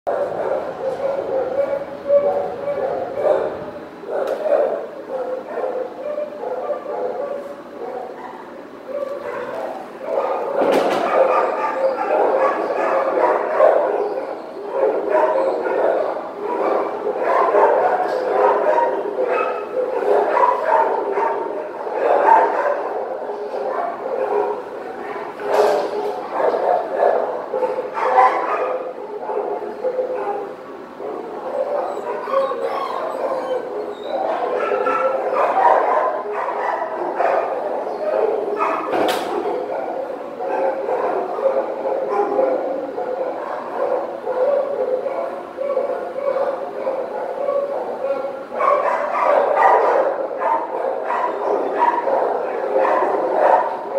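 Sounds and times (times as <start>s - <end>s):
dogs barking and yipping: 0.1s - 53.9s.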